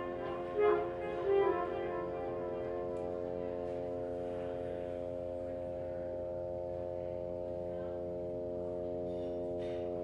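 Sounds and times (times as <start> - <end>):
sustained drone of steady tones: 0.0 - 10.0.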